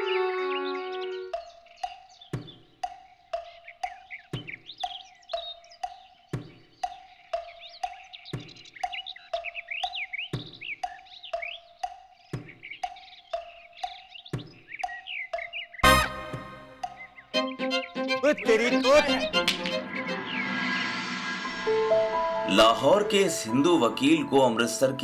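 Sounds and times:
birdsong chirps: 0.0 - 21.2, 22.4 - 25.0
wooden knock percussion: 1.3 - 20.0.

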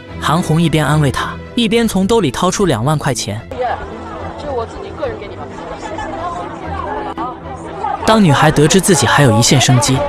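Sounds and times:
quiet background music: 0.0 - 10.0
other voices: 2.4 - 10.0
woman talking: 3.5 - 8.0.

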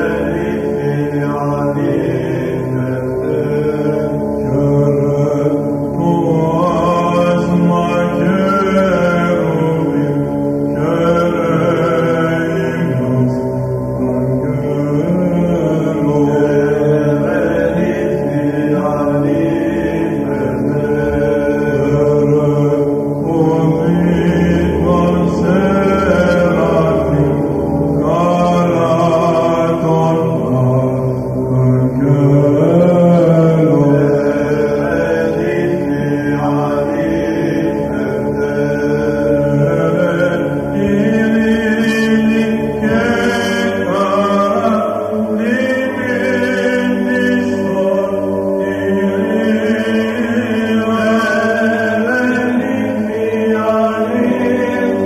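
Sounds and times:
voices chanting a hymn: 0.0 - 55.0.

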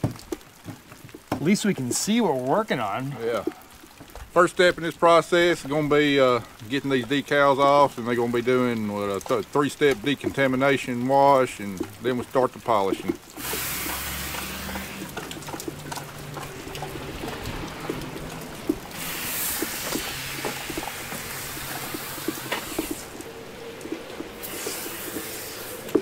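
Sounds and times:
small drips and taps: 0.0 - 26.0
steady wet hiss: 0.0 - 26.0
handheld sprayer hissing: 13.4 - 15.2, 18.9 - 23.2, 24.2 - 26.0.

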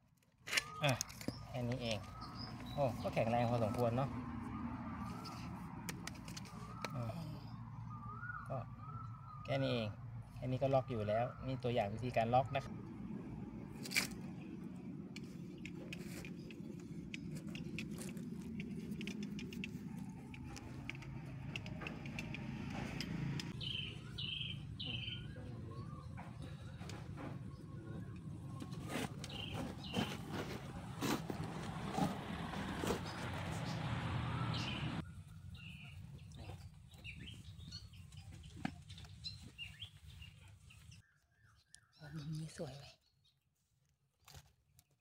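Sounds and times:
small birds chirping: 0.6 - 13.1, 13.8 - 45.0
sharp clicks: 15.1 - 23.6.

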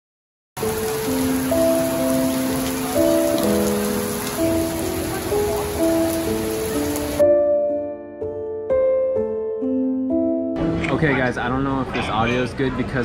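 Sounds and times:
heavy rain on wet pavement: 0.6 - 7.2
soft music with slow held notes: 0.6 - 11.2.

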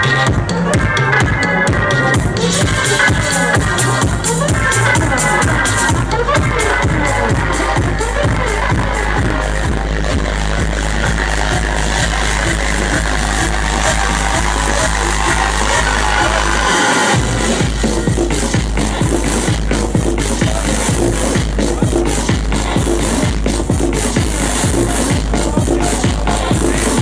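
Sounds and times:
electronic dance music: 0.0 - 27.0.

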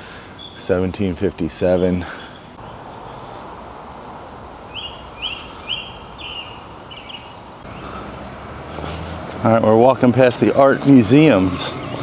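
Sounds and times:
distant traffic hum: 0.0 - 12.0
small bird chirping: 4.7 - 8.0.

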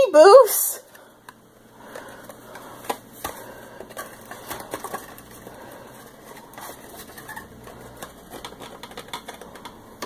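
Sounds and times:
items clicking and rustling in box: 1.9 - 10.0.

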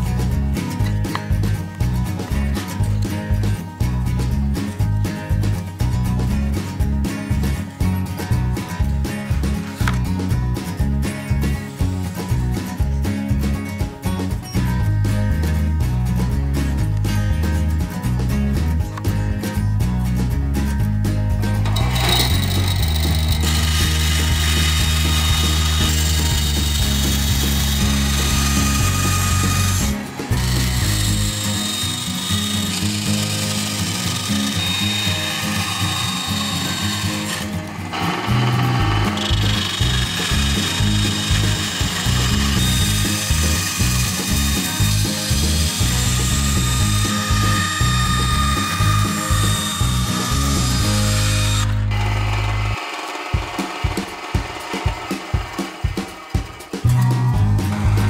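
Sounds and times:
background music with bass line: 0.0 - 52.0, 53.4 - 58.0
band saw cutting plastic: 21.5 - 58.0.

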